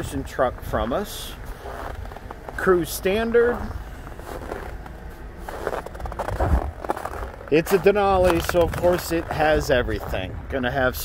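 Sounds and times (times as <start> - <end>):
low uneven rumble: 0.0 - 11.0
footsteps on snowy pavement: 0.1 - 10.3.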